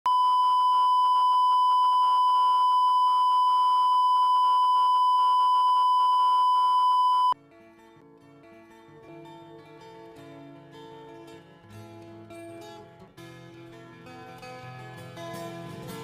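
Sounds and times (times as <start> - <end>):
high-pitched test tone beep: 0.1 - 7.4
plucked-string music: 7.4 - 16.0.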